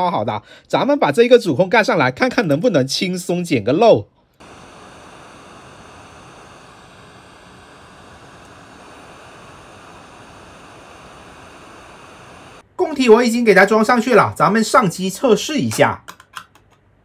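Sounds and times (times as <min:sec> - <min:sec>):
hot air station hissing: 0:04.4 - 0:12.6.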